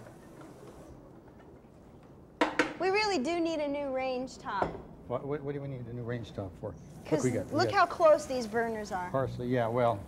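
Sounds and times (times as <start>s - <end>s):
faint kitchen background: 0.0s - 10.0s.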